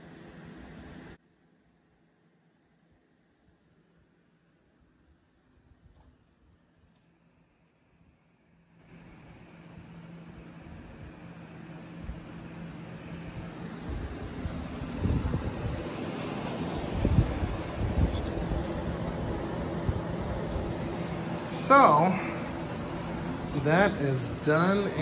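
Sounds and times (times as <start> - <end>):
electric fan whirring: 0.0 - 1.2, 4.0 - 25.0.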